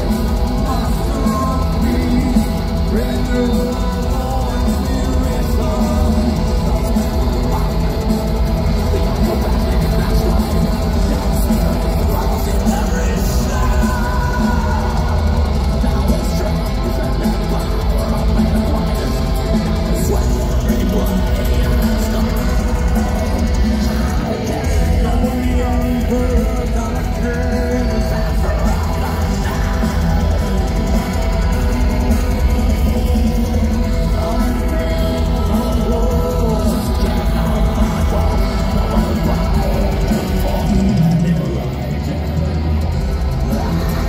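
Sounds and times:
distorted electric guitars: 0.0 - 44.0
drum kit: 0.0 - 44.0
live metal band playing: 0.0 - 44.0.

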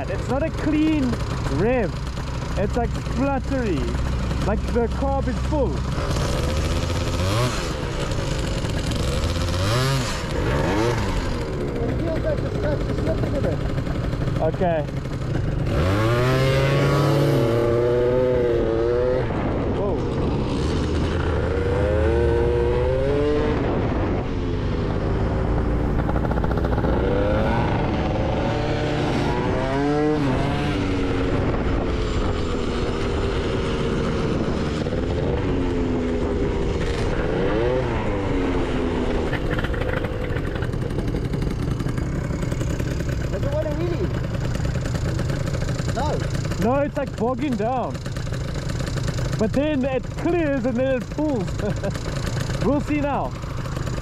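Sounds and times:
two-stroke scooter engines revving: 0.0 - 54.0
wind and road noise: 0.0 - 54.0.

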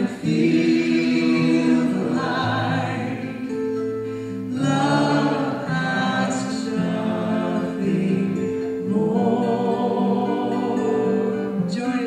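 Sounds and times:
group singing slow song: 0.0 - 12.0.

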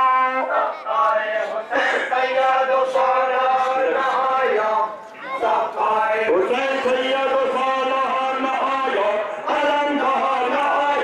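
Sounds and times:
person chanting a lament: 0.0 - 11.0.

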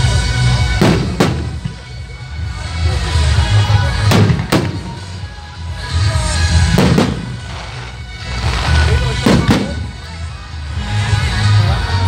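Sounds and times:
music: 0.0 - 12.0
fireworks bursting with sharp bangs: 0.6 - 3.2, 3.8 - 5.3, 6.1 - 10.4.

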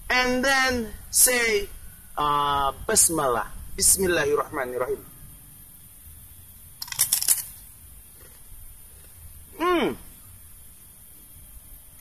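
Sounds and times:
crunching crispy cracker: 6.8 - 9.2.

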